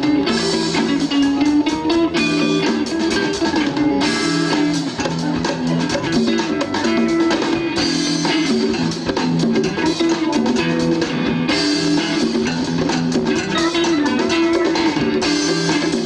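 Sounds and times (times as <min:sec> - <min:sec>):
bass guitar: 0:00.0 - 0:16.0
drum kit beat: 0:00.0 - 0:16.0
electric guitars: 0:00.0 - 0:16.0.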